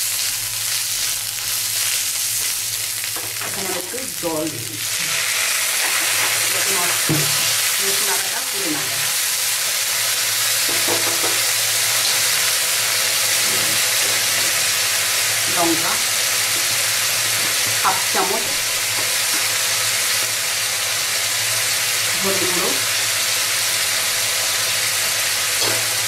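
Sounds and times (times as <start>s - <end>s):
onions sizzling in a wok: 0.0s - 26.0s.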